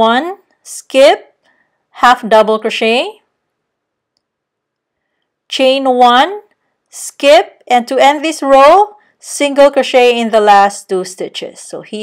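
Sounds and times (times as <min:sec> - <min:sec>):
woman speaking: 0:00.0 - 0:01.4, 0:02.0 - 0:03.3, 0:05.5 - 0:12.0.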